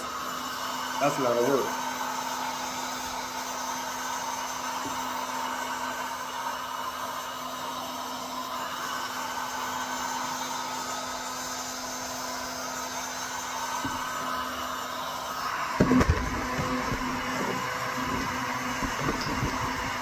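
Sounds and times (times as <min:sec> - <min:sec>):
heat gun fan humming: 0:00.0 - 0:20.0.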